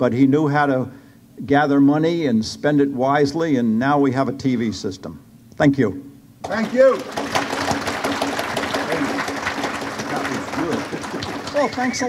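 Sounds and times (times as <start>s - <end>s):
audience applauding: 6.4s - 12.0s.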